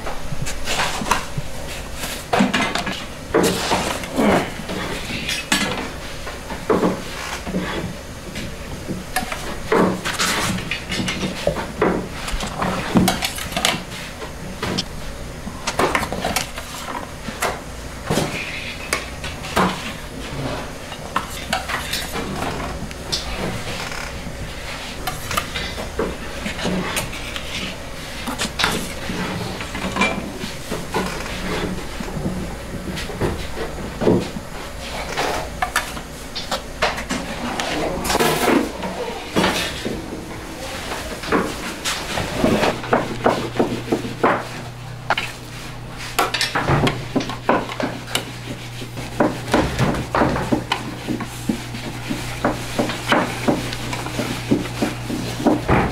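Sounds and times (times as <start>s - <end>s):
steady low hum: 0.0s - 55.9s.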